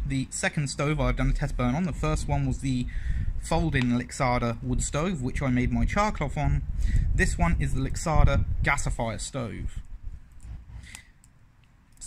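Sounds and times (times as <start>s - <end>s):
low rumble: 0.9s - 10.9s.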